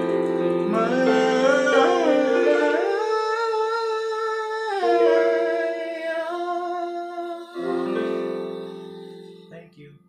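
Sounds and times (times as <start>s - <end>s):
man singing a cappella: 0.7s - 8.9s.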